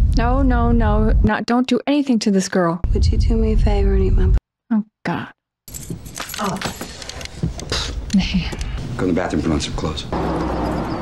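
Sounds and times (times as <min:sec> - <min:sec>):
keys jangling: 0:05.7 - 0:07.4.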